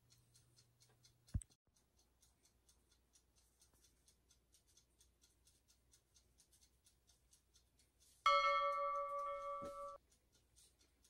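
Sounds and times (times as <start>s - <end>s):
bright notification bell ding: 8.3s - 10.0s.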